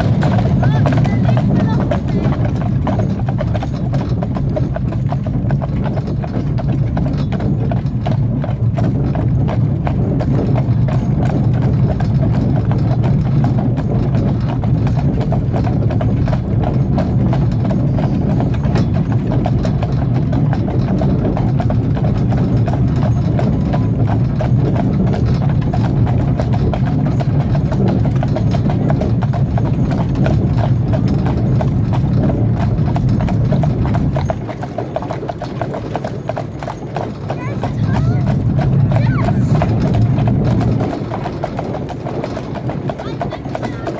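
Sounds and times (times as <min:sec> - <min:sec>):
horse hooves clip-clopping on pavement: 0:00.0 - 0:43.9
low rumble: 0:37.5 - 0:43.0.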